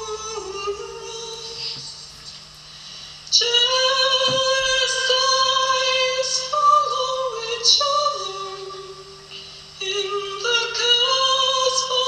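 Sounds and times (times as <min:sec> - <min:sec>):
woman singing a long note: 0:00.0 - 0:01.9, 0:03.3 - 0:12.0.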